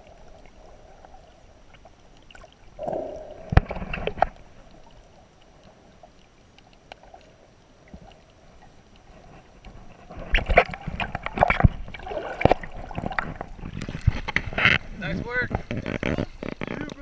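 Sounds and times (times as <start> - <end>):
water splashing against camera: 0.0 - 17.0.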